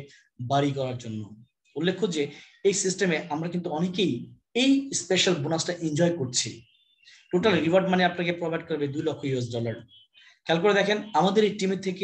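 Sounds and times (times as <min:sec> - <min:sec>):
person narrating: 0:07.3 - 0:07.9.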